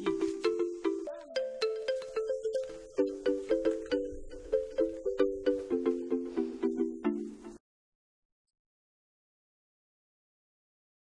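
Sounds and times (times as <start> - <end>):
quick plucked notes: 0.0 - 7.6.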